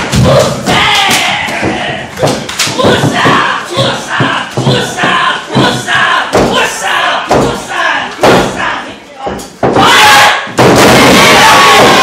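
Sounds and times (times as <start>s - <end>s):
spectators shouting and yelling: 0.0s - 12.0s.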